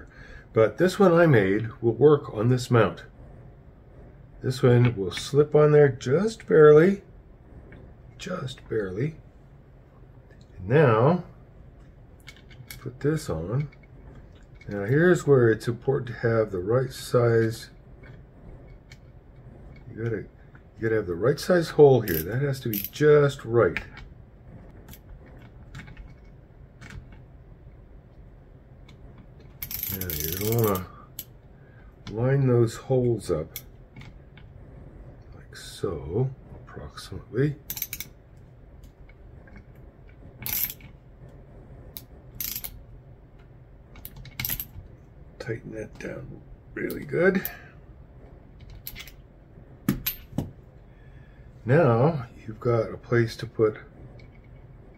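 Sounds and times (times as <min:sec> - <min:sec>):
light clicks of metal parts: 0:11.8 - 0:15.0, 0:28.8 - 0:31.3, 0:37.7 - 0:38.1
ratchet wrench clicking: 0:29.6 - 0:30.8, 0:37.7 - 0:38.1.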